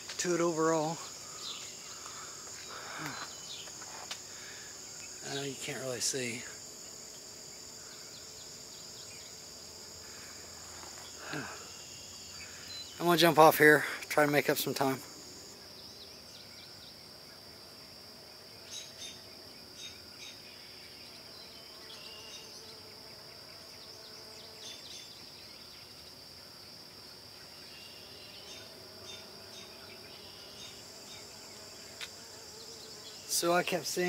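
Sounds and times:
high-pitched insect drone: 0.0 - 18.0, 18.6 - 34.0
faint ticks: 31.5 - 32.2.

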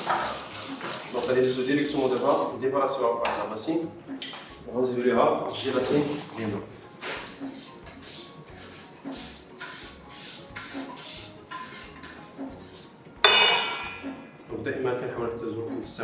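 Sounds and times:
utensil scraping a saucepan: 0.0 - 2.5, 5.6 - 14.0
metallic clang of steel: 13.2 - 14.2.

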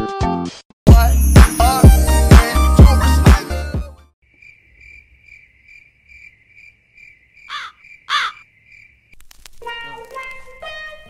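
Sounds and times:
music: 0.0 - 4.2, 9.6 - 11.0
loud swooping cricket calls: 4.2 - 9.9
cricket chirping: 4.2 - 10.8.

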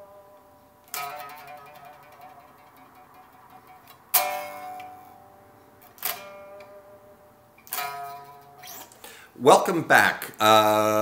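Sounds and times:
slow electric guitar riff: 0.0 - 9.4.

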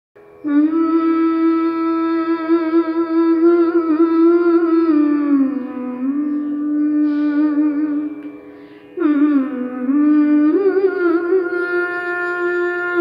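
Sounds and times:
woman humming a melody: 0.4 - 8.3, 9.0 - 13.0.

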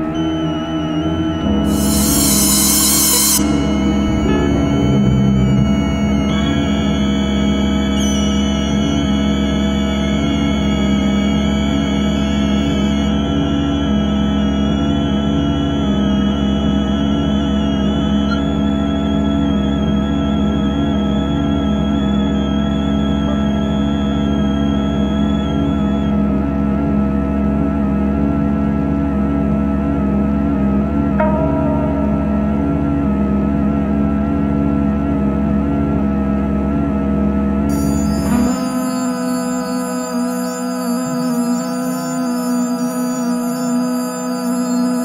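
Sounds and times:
synthetic tone drone: 0.0 - 45.0.

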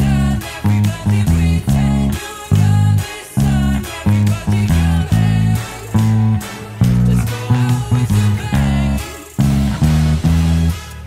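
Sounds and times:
band backing track: 0.0 - 11.0
electric bass guitar line: 0.0 - 11.0.

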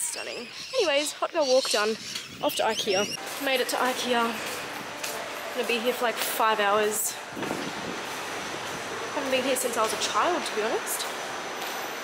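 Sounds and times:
steady rushing noise: 6.4 - 12.0.

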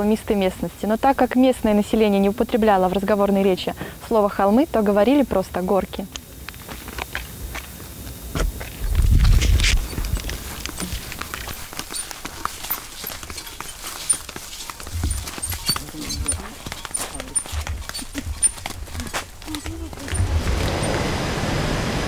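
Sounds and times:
indistinct voices: 9.9 - 21.0.

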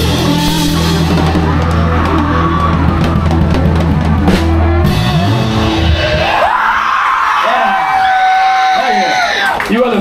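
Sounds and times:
rock band notes ringing: 0.0 - 6.4
audience yelling and whooping: 0.0 - 10.0.

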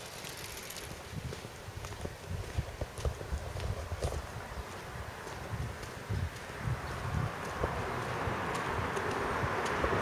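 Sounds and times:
steady outdoor hiss: 0.0 - 10.0
footsteps walking: 0.1 - 9.8.

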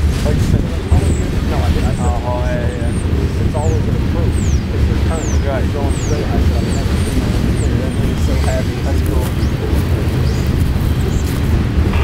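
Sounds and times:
freight train wheels rumbling on rail: 0.0 - 12.0.

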